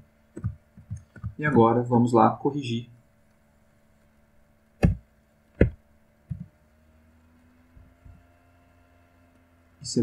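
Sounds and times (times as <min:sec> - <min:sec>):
soft low thumps: 0:00.3 - 0:01.6, 0:04.8 - 0:06.6.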